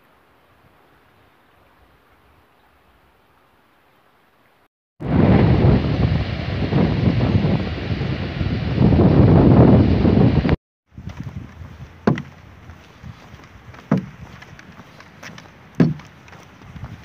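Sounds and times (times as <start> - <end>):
wind buffeting microphone: 5.0 - 17.0
footsteps walking outdoors: 10.9 - 17.0
sharp knocks: 12.0 - 12.3, 13.9 - 14.2, 15.8 - 16.1.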